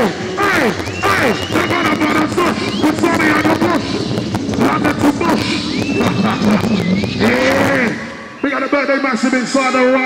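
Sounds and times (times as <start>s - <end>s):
drum and bass music: 0.0s - 8.1s.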